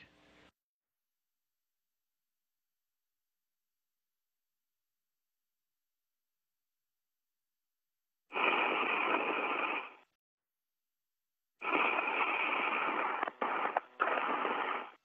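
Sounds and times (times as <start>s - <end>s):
radio hiss: 8.3s - 10.1s, 11.6s - 15.0s.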